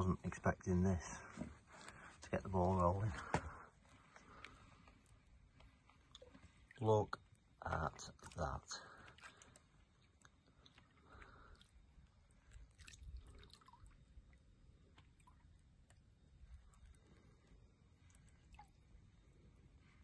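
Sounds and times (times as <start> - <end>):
water drips and splashes: 5.8 - 17.2, 18.0 - 19.1.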